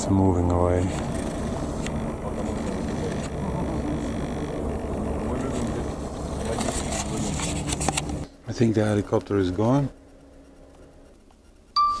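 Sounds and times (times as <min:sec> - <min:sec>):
distant helicopter drone: 0:00.0 - 0:11.8
handling clicks and rustle: 0:00.5 - 0:08.3.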